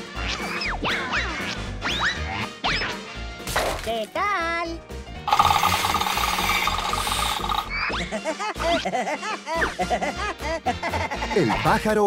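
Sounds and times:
cartoon woodpecker drilling rattle: 0:05.3 - 0:07.8.

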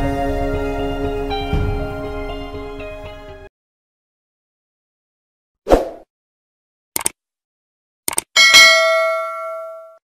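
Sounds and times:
notification bell ding: 0:08.4 - 0:10.0.

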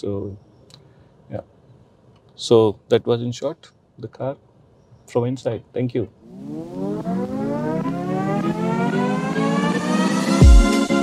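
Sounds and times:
synthesized riser tone gliding upward: 0:06.2 - 0:11.0.

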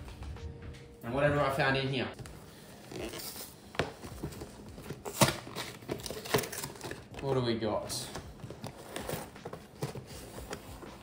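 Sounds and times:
cardboard box rustling: 0:02.9 - 0:07.3, 0:08.0 - 0:11.0.

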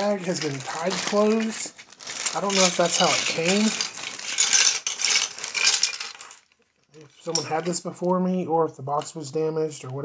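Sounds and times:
plastic bag crinkling: 0:00.0 - 0:08.0
plastic toy parts clinking: 0:00.0 - 0:08.1.

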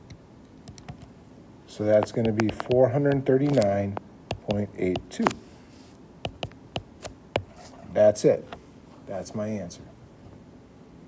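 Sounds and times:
stylus clicking on drawing tablet: 0:01.9 - 0:05.4, 0:06.3 - 0:07.5.

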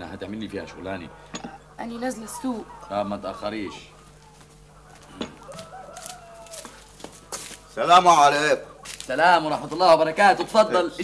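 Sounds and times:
chicken calling: 0:00.0 - 0:11.0.

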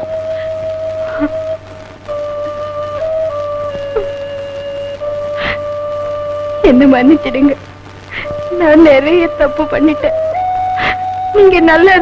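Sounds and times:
instrument holding long notes: 0:00.0 - 0:12.0.

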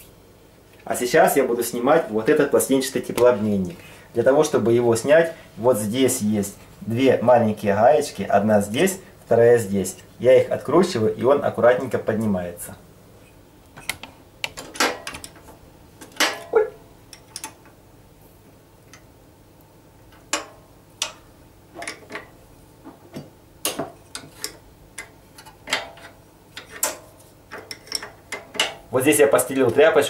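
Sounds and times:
spanner clicking on metal: 0:20.1 - 0:21.2.

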